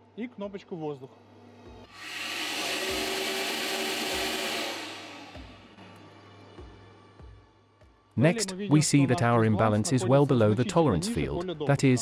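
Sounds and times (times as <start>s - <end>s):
air rush and turbine spinning: 2.0s - 5.8s.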